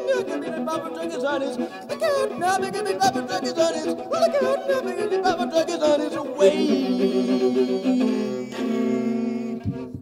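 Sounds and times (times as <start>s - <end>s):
guitar and fiddle chord: 0.0s - 10.0s.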